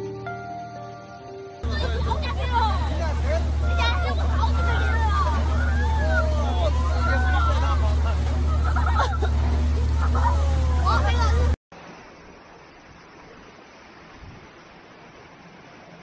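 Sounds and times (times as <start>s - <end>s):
people shouting and exclaiming: 1.6s - 9.3s, 9.9s - 11.6s
loud steady low rumble: 1.6s - 11.6s.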